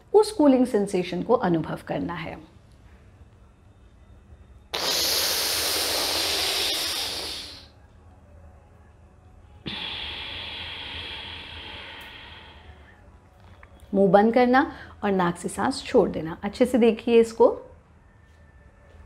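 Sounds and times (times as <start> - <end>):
woman hissing breath through teeth: 4.7 - 7.8, 9.7 - 12.8.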